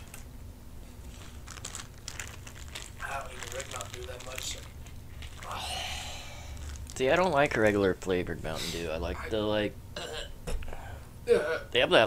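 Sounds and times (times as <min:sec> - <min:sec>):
plastic bag crinkling: 0:01.0 - 0:08.1.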